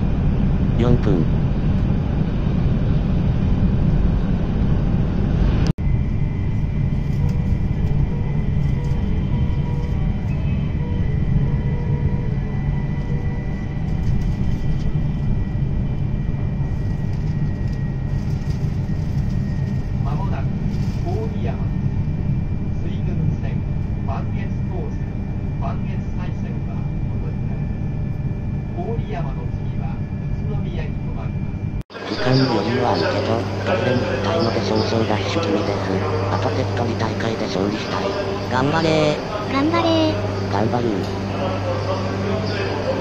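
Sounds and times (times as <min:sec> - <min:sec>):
train rumble inside cabin: 0:00.0 - 0:43.0.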